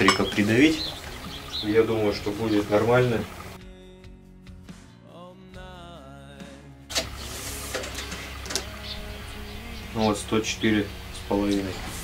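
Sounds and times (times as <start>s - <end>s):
faint background music with singing: 0.0s - 12.0s.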